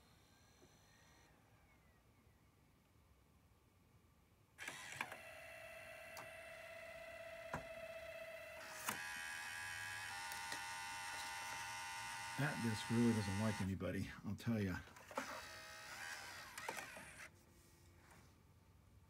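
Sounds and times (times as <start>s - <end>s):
cd drive motor whine: 0.0s - 2.0s, 4.6s - 13.7s, 15.0s - 17.3s
cd drive clicks: 10.0s - 11.6s.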